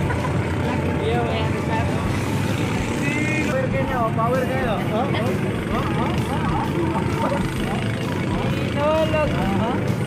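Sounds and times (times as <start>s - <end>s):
boat engine rumbling: 0.0s - 10.0s.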